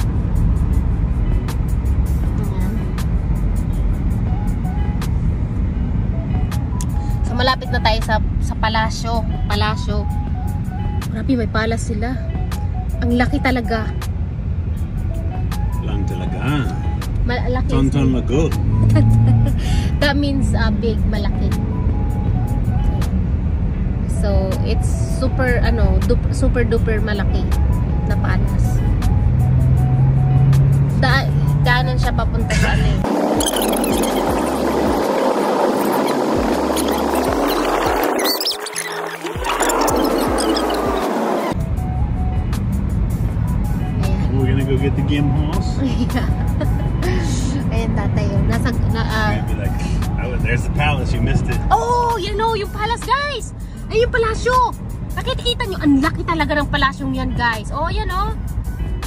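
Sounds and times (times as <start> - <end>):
music: 0.0 - 33.1, 36.1 - 59.0
car cabin road and engine rumble: 0.0 - 59.0
voices: 47.0 - 58.4.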